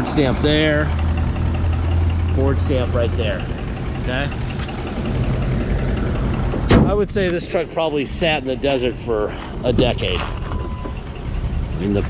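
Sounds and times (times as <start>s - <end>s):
steady low rumble: 0.0s - 12.0s
car hood slammed shut: 6.7s - 7.0s.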